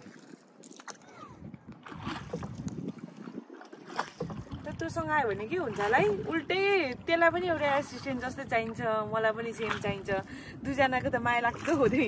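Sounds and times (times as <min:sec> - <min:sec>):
water against boat: 0:00.0 - 0:12.0
wind: 0:00.0 - 0:12.0.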